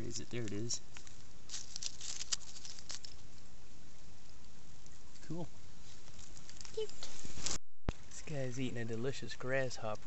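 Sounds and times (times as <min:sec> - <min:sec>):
leaves and gravel rustling: 0:00.0 - 0:10.0
steady background hiss: 0:00.0 - 0:10.0.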